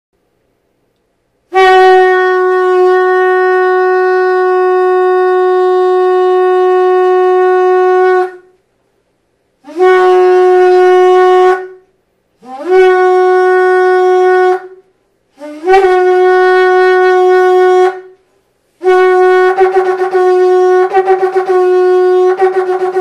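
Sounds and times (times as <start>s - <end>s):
ram's horn blasts: 1.5s - 8.6s, 9.6s - 18.2s.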